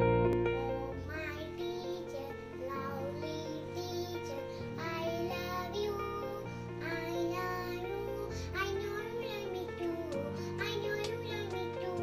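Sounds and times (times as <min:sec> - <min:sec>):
girl singing: 0:00.3 - 0:12.0.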